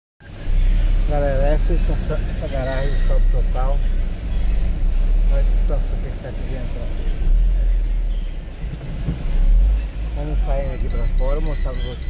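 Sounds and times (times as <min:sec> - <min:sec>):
vehicle rumble from inside cab: 0:00.2 - 0:12.0.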